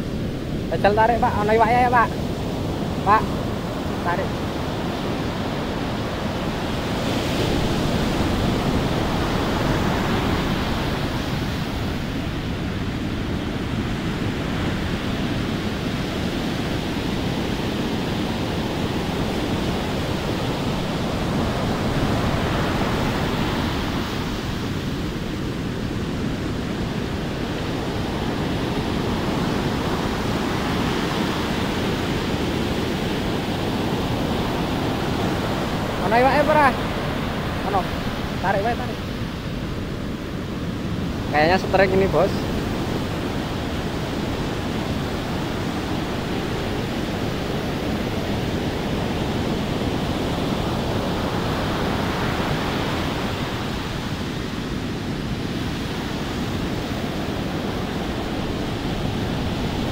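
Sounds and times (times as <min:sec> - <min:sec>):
surf breaking on beach: 0:00.0 - 0:59.9.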